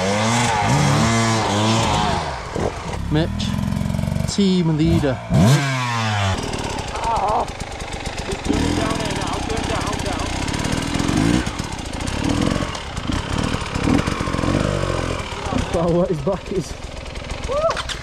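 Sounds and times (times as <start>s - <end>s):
dirt bike engine revving: 0.0s - 18.0s
voices: 6.9s - 7.6s, 8.3s - 10.5s, 15.2s - 16.8s.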